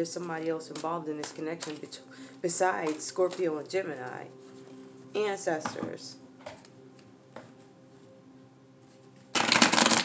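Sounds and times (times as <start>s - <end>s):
cards being shuffled: 0.7s - 1.9s, 9.2s - 10.0s.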